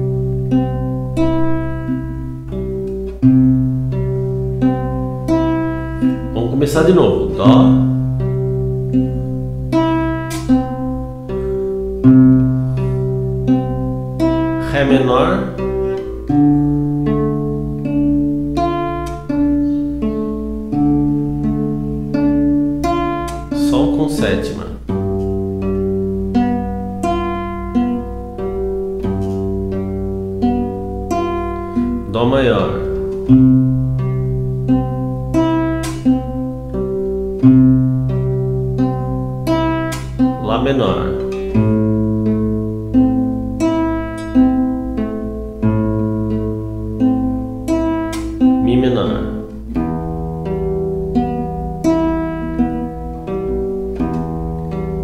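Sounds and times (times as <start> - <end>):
classical guitar fingerpicked: 0.0 - 55.0.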